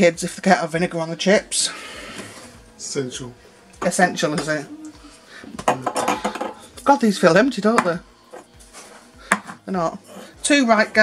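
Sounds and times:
metal aerosol cans clinking: 0:03.7 - 0:06.9.

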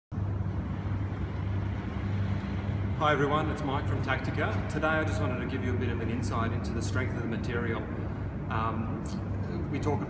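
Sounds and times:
steady low hum: 0:00.1 - 0:10.0.

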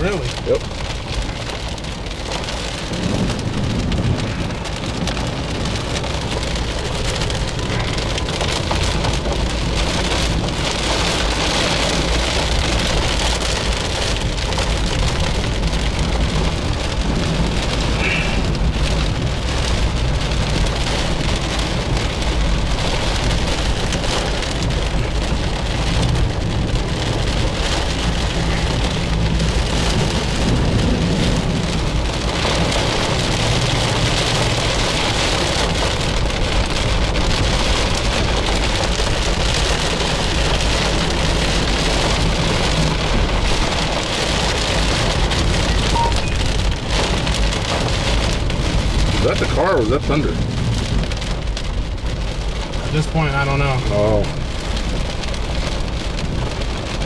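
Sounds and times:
car driving on wet road: 0:00.0 - 0:57.0
heavy rain on car roof: 0:00.0 - 0:57.0.

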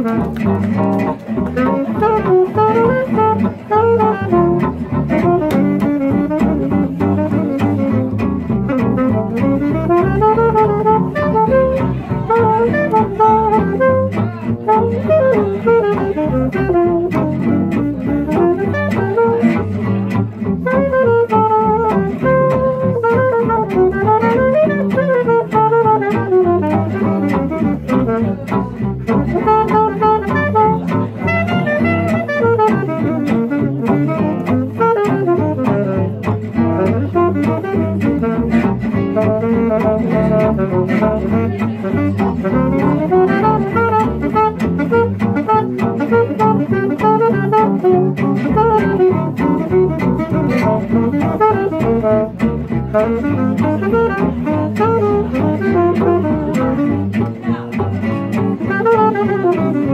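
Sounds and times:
plucked double bass: 0:00.0 - 0:59.9
saxophone lead melody: 0:00.0 - 0:59.9
strummed rhythm guitar: 0:00.0 - 0:59.9.

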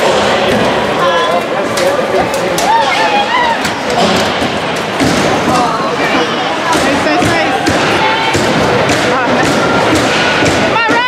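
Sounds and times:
spectators' voices din: 0:00.0 - 0:11.0
puck and sticks hitting ice: 0:06.7 - 0:11.0.

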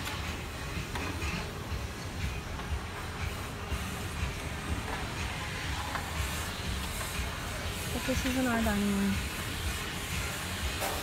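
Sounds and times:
low rumble and hiss of room: 0:00.0 - 0:11.0.

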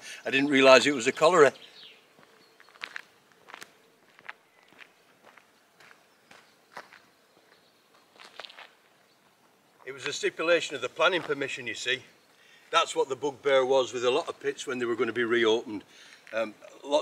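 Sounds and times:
footsteps on rough road: 0:01.6 - 0:11.7.

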